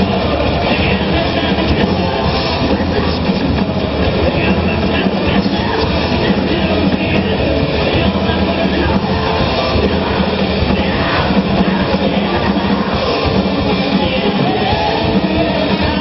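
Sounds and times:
hard rock band playing live: 0.0 - 16.0.

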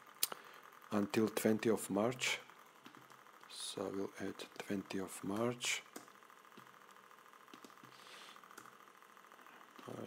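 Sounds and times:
faint room hum: 0.0 - 10.0
soft keyboard clicks: 7.5 - 7.9.

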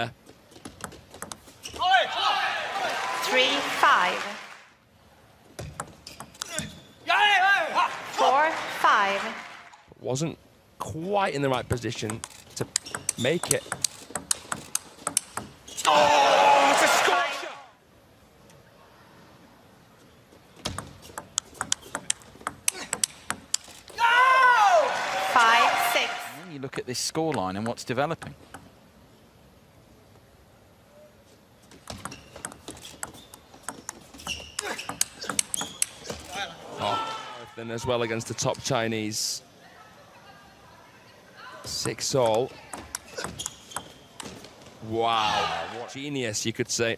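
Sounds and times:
table tennis ball clicking: 0.7 - 1.4, 11.7 - 15.5, 20.7 - 23.7, 31.9 - 34.0, 34.6 - 36.1, 42.7 - 44.3
shoes squeaking on floor: 1.4 - 1.9, 12.8 - 14.7, 31.8 - 36.4, 42.9 - 44.5.

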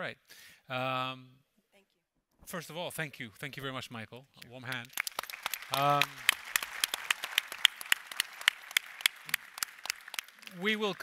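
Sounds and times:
audience applause: 4.8 - 11.0.

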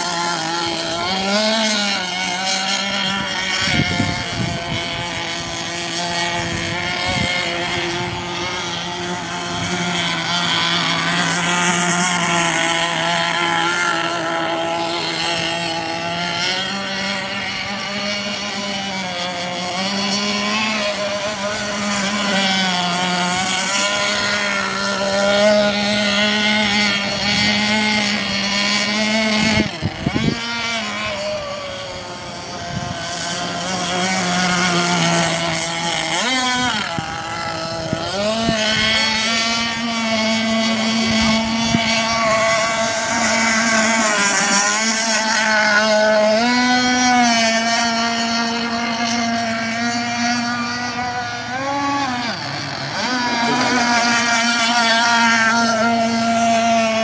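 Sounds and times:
model boat motor whining: 0.0 - 57.0.

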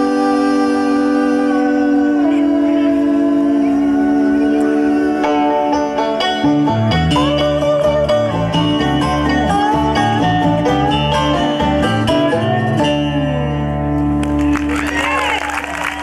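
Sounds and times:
bluegrass band playing: 0.0 - 16.0
sliding steel guitar lead: 0.0 - 16.0.

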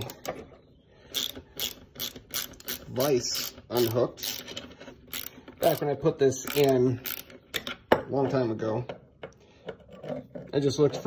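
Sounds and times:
hand ratchet clicking: 1.1 - 7.8.

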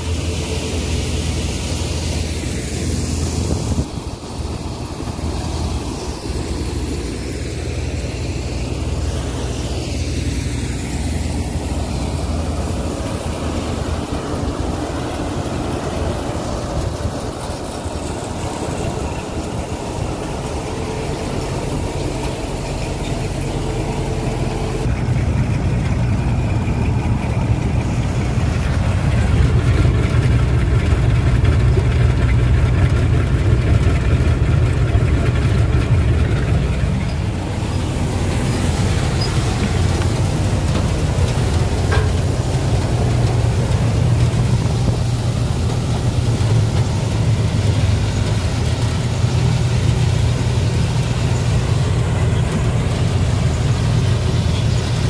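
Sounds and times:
threshing harvester running: 0.0 - 55.0.

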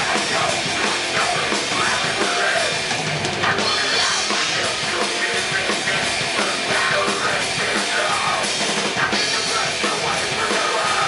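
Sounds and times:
electric guitars: 0.0 - 11.0
heavy metal band playing live: 0.0 - 11.0.

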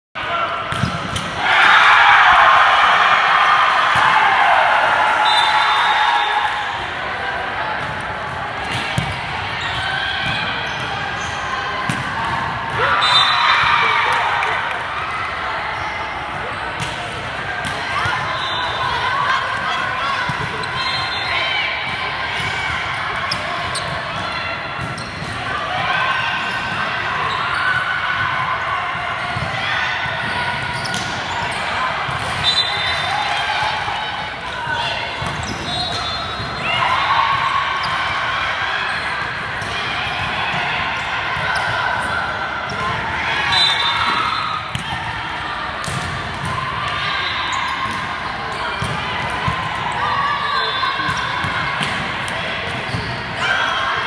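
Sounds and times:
voices calling and cheering: 0.2 - 54.0
volleyballs hit and bouncing: 0.6 - 1.6, 6.8 - 15.4, 16.2 - 20.8, 21.8 - 27.2, 27.8 - 47.0, 47.7 - 50.0, 51.0 - 54.0.

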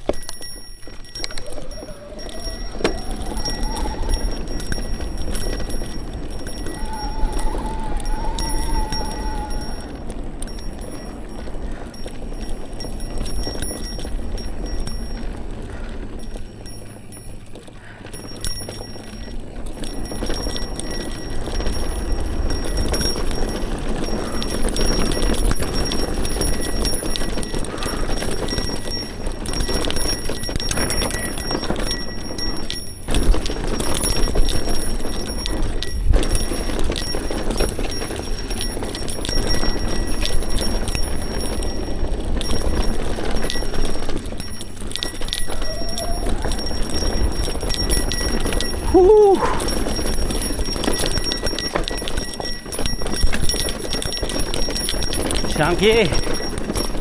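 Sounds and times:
bike rattling over rough ground: 0.0 - 57.0
tyre noise: 0.0 - 57.0
wind buffeting microphone: 0.0 - 57.0.

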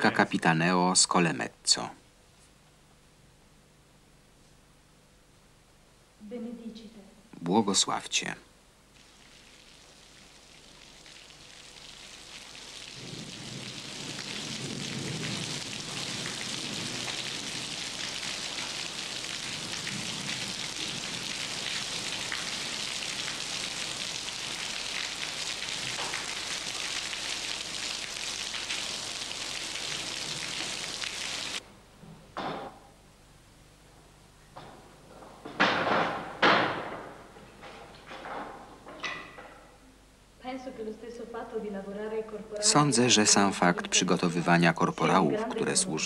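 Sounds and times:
rain on a tiled roof: 9.0 - 31.6.

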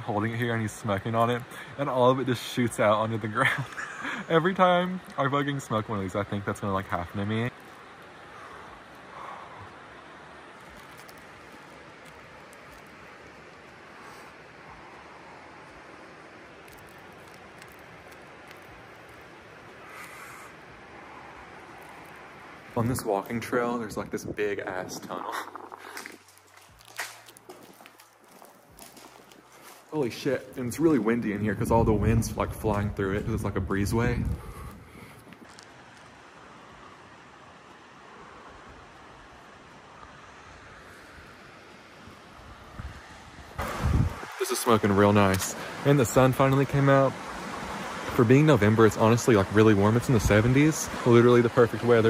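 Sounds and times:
river water running over rocks: 0.0 - 31.4, 35.2 - 52.0
faint rushing outdoor noise: 0.0 - 52.0.

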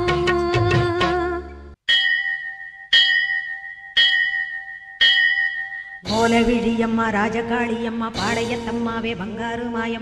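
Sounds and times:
bell ringing: 1.9 - 8.9.

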